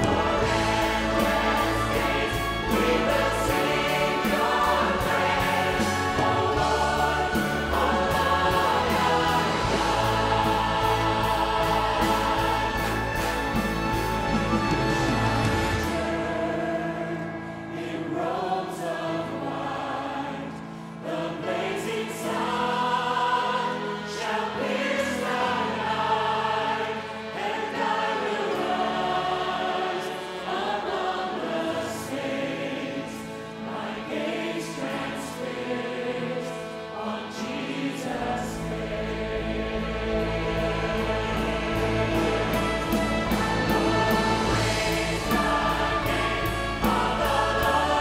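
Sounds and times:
orchestral accompaniment: 0.0 - 20.2, 21.0 - 48.0
choir singing worship song: 0.0 - 48.0.

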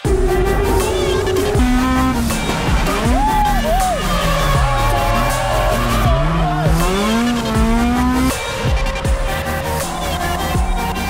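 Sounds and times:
background music: 0.0 - 11.0
car engine revving: 0.0 - 11.0.

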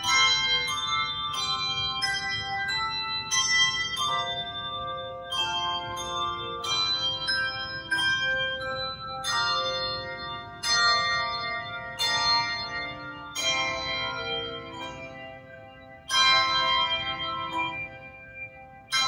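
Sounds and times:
handbell choir ringing chords: 0.0 - 19.0.

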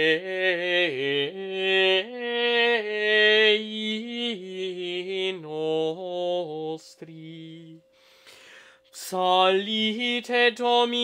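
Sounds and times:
man singing chant: 0.0 - 7.8.

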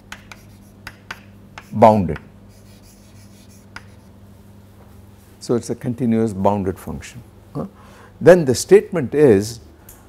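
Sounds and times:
chalk tap: 0.0 - 4.1
chalk scratching on blackboard: 0.0 - 4.2
low electrical hum: 0.0 - 10.0.

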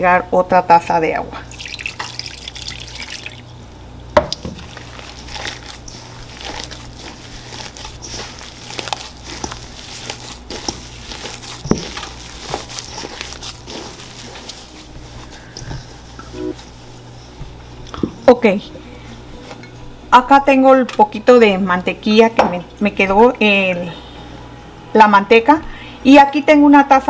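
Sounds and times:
hands squishing wet dough: 4.3 - 17.6.

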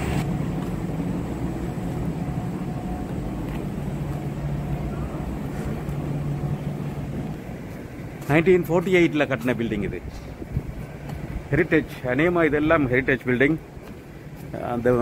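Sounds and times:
low rumble: 0.0 - 8.3
low mechanical hum: 0.0 - 15.0.

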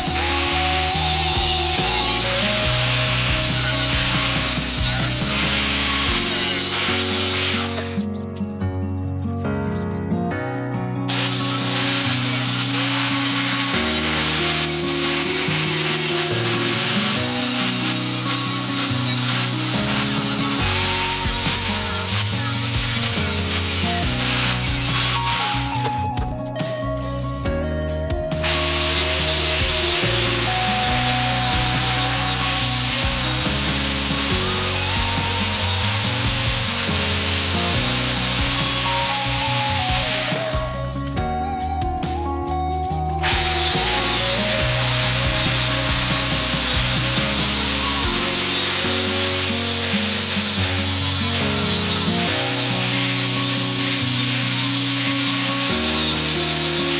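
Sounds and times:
power tool grinding metal: 0.0 - 8.2, 11.1 - 27.2, 28.2 - 41.3, 42.9 - 56.9
background music: 0.0 - 56.9.

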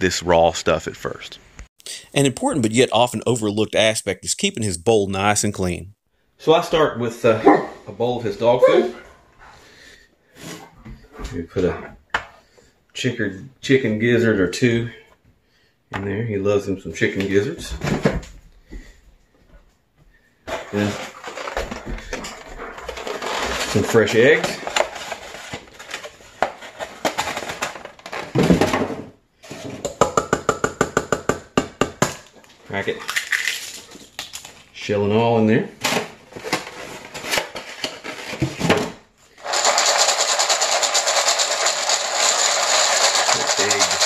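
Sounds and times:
man speaking: 0.0 - 9.1, 43.3 - 44.0
kibble rattling in a metal bowl: 39.4 - 44.0.

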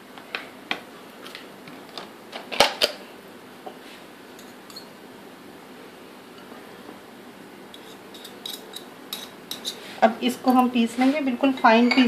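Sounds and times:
cutlery clinking in glass bowl: 4.4 - 4.9, 11.5 - 12.0.

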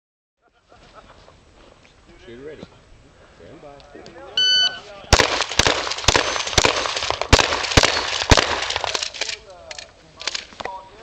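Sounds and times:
shot timer beep: 4.4 - 4.8
gunshots: 5.1 - 9.4.

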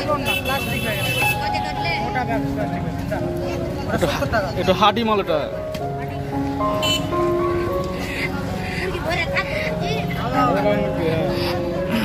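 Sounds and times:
low street and traffic noise: 0.0 - 12.0.

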